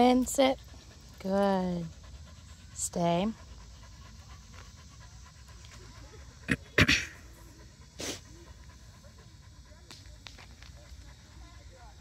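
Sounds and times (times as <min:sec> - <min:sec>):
dog panting: 0:00.0 - 0:12.0.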